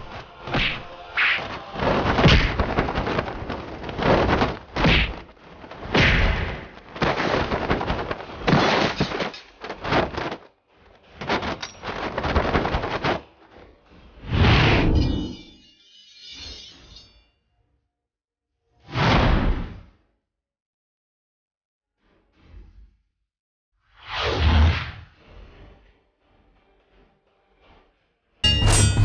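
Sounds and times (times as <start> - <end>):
booms and thuds: 1.4 - 10.3.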